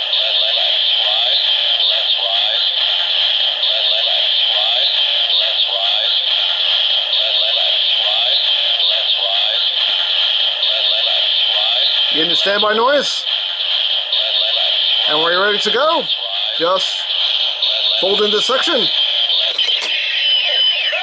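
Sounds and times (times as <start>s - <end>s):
synthesized voice repeating: 0.0s - 19.6s
electronic music from small speaker: 0.0s - 21.0s.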